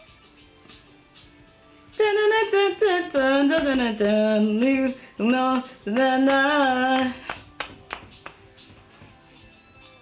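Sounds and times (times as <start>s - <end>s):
faint music: 0.0s - 10.0s
woman singing: 1.9s - 7.7s
hand claps: 3.6s - 5.0s, 5.9s - 8.7s.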